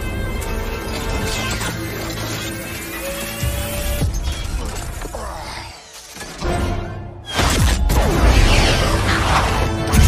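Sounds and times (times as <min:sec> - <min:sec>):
action film music: 0:00.0 - 0:10.0.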